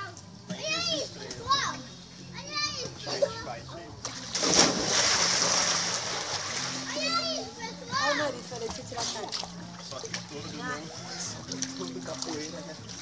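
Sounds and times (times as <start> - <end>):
splash into swimming pool: 4.0 - 6.9.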